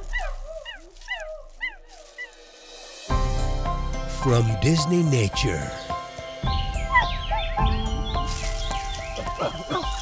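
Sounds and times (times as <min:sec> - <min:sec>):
chimpanzee calling: 0:09.2 - 0:10.0.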